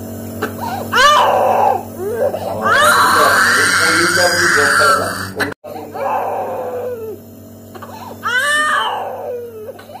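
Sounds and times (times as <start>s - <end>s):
infant crying: 0.6s - 7.2s, 7.8s - 10.0s.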